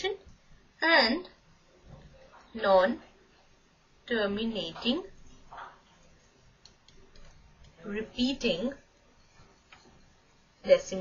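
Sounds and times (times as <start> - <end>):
woman speaking: 0.0 - 1.4, 2.5 - 3.1, 4.1 - 5.2, 7.8 - 8.8, 10.6 - 11.0.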